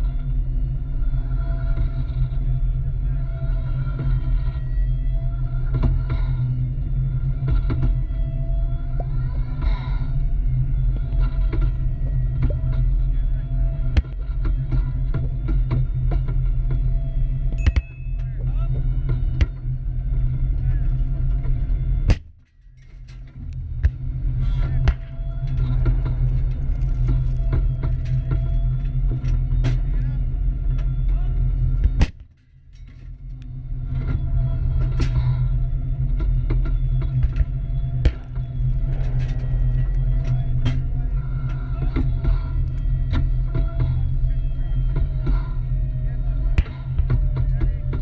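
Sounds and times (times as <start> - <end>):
tank engine and tracks droning: 0.0 - 48.0.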